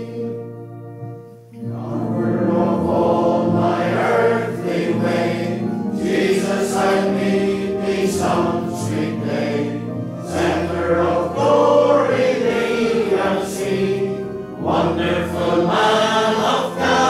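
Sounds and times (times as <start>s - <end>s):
congregation singing a hymn: 0.0s - 0.6s, 1.6s - 17.0s.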